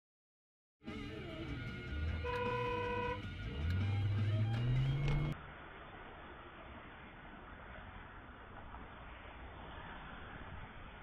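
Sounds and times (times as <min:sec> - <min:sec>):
music playing: 0:00.8 - 0:05.4
car engine accelerating: 0:01.3 - 0:09.0.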